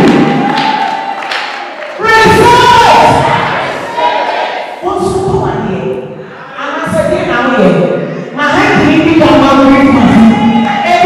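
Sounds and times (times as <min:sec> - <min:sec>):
congregation voices in hall: 0:00.0 - 0:11.0.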